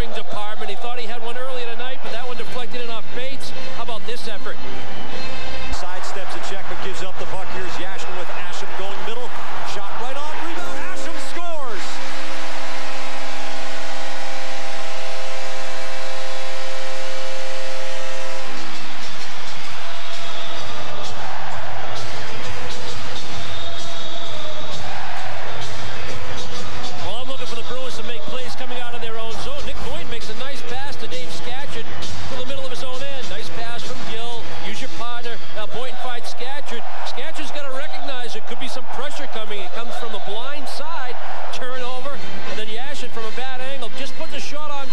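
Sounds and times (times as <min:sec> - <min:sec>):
arena music: 0:00.0 - 0:44.9
crowd cheering: 0:00.0 - 0:44.9
arena goal horn blast: 0:04.6 - 0:42.6.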